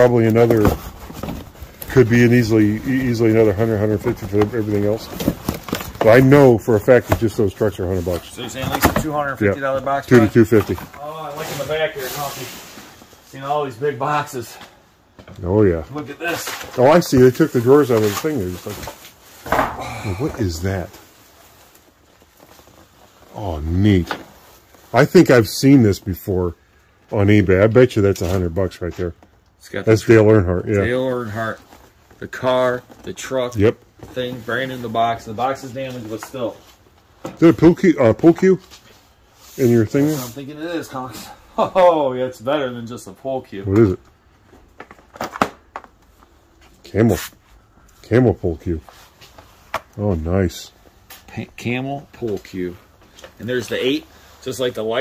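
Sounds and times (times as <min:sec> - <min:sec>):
low background noise: 0:00.0 - 0:55.0
cardboard box rustling and knocking: 0:04.0 - 0:07.6.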